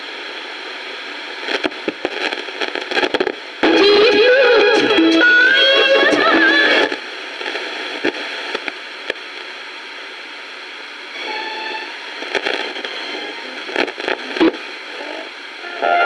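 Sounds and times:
radio static hiss: 0:00.0 - 0:16.0
radio station music: 0:01.2 - 0:08.6, 0:11.2 - 0:16.0
crackles and clicks of tuning dial: 0:01.3 - 0:09.6, 0:12.2 - 0:15.3.

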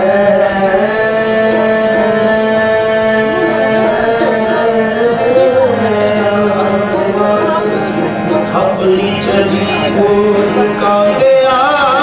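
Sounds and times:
harmonium holding a chord: 0:00.0 - 0:12.0.

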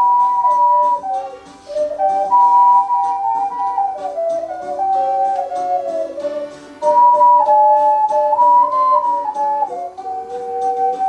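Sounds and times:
ocarinas playing a hymn tune: 0:00.0 - 0:11.0.

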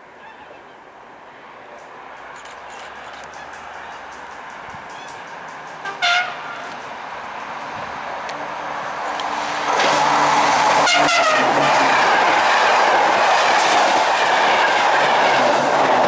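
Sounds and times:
train rushing past: 0:03.0 - 0:16.0
train horn blast: 0:05.8 - 0:06.7, 0:10.7 - 0:12.3.

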